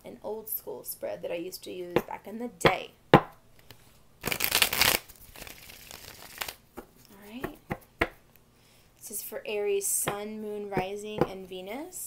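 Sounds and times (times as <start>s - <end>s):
cards being shuffled: 3.6s - 7.9s.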